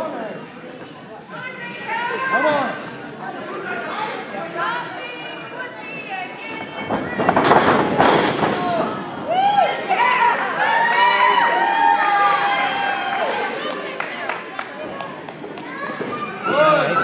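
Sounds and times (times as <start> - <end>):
crowd shouting and cheering: 8.4 - 17.0.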